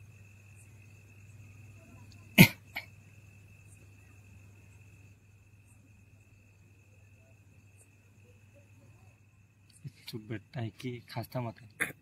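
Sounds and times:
crickets chirping: 0.0s - 12.0s
person coughing: 2.4s - 2.9s.

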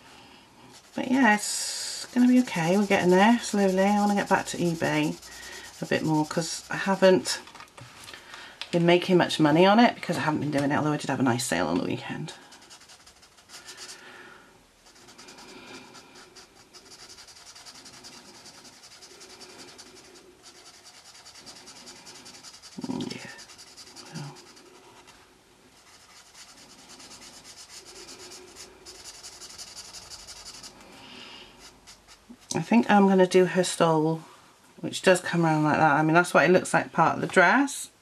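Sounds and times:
marker nib rubbing on paper: 0.7s - 7.4s, 12.2s - 14.0s, 14.8s - 25.2s, 25.8s - 30.8s, 31.5s - 32.7s.

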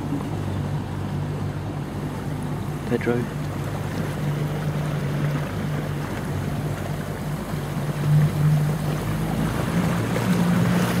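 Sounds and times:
boat engine humming: 0.0s - 11.0s
water washing along hull: 0.0s - 11.0s.

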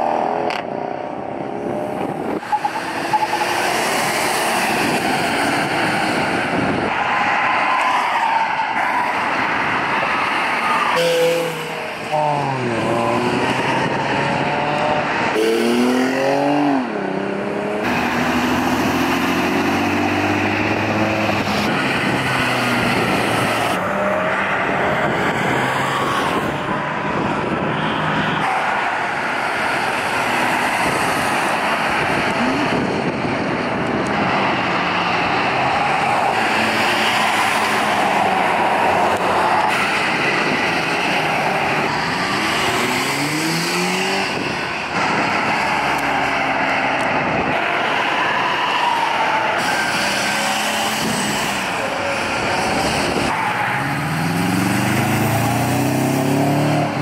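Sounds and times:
passing traffic: 0.0s - 57.0s
sports cars accelerating: 0.0s - 57.0s.

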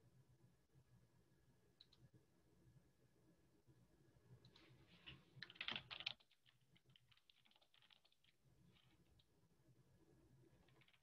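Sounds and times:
typing on computer keyboard: 5.4s - 8.9s.

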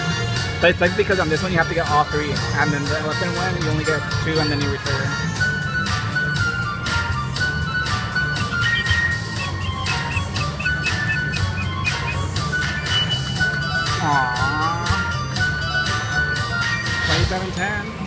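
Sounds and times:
slot machine jingling tones: 8.3s - 14.8s
swooping sound effect: 8.4s - 13.9s.

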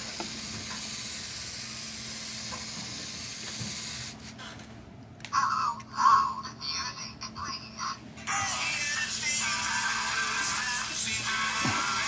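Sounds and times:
small electric motors whirring: 0.0s - 4.6s, 8.3s - 12.0s.

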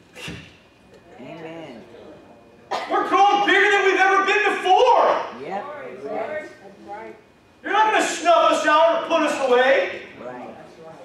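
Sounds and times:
man's loud voice: 2.7s - 5.3s, 7.6s - 10.1s.

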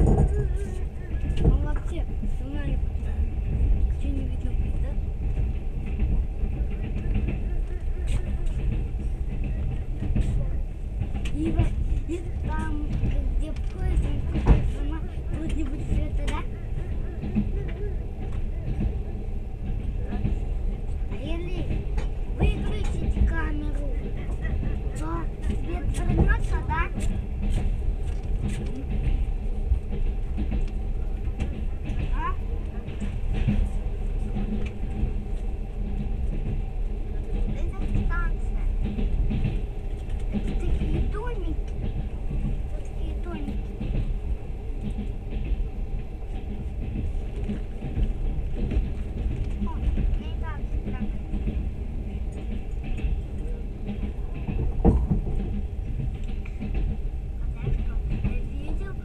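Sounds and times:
train clicks: 0.0s - 59.0s
train wheels rumbling on rails: 0.0s - 59.0s.

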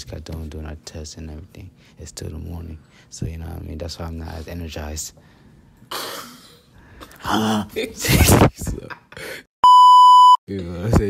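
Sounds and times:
high censor bleep tone: 9.6s - 10.4s.

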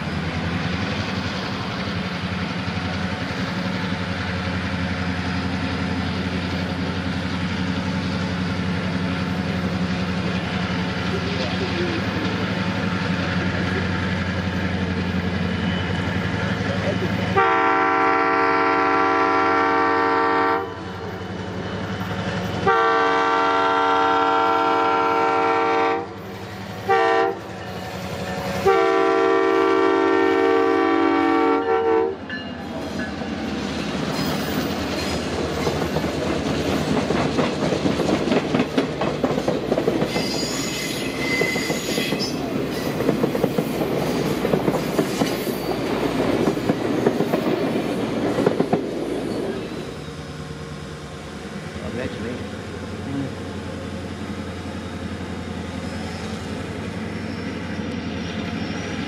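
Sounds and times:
diesel locomotive engine rumble: 0.0s - 59.0s
train air horn: 17.3s - 20.9s, 22.6s - 27.5s, 28.6s - 32.2s.

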